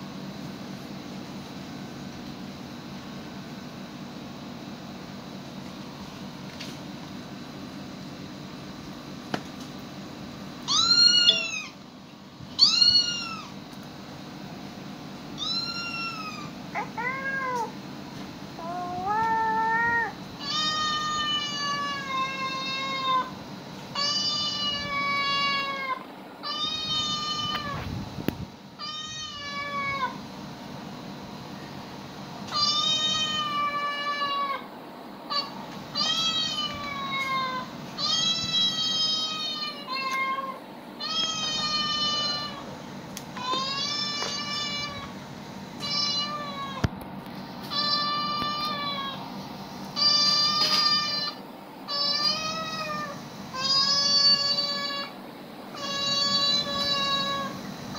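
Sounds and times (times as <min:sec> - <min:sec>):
cat meows from phone: 0:10.7 - 0:11.8, 0:12.6 - 0:13.5, 0:50.0 - 0:55.1.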